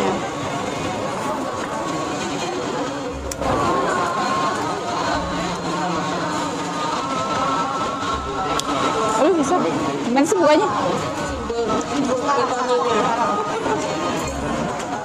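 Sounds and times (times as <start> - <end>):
indistinct crowd chatter: 0.0 - 15.0.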